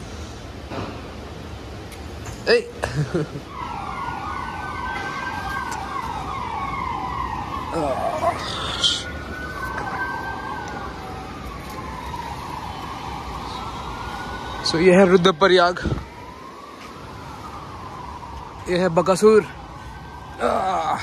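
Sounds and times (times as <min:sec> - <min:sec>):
emergency vehicle siren: 0:02.5 - 0:21.0.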